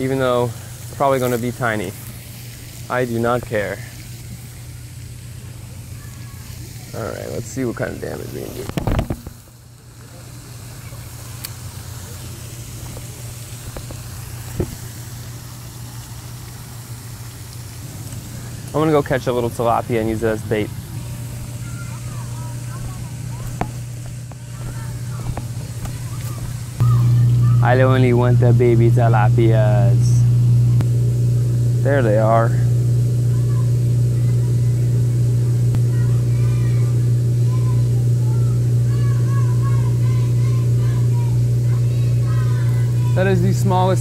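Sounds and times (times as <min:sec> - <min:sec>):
low even hum: 0:00.0 - 0:44.0
footsteps on wooden boardwalk: 0:22.7 - 0:26.8.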